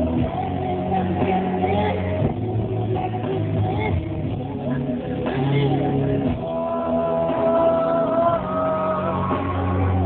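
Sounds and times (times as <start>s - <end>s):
live pop concert music: 0.0s - 10.0s.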